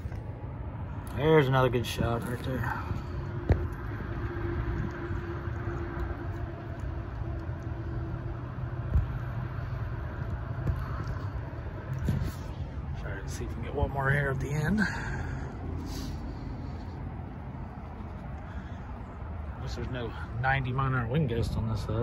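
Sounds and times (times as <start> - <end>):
steady hum: 0.0 - 21.7
low vehicle rumble: 0.0 - 22.0.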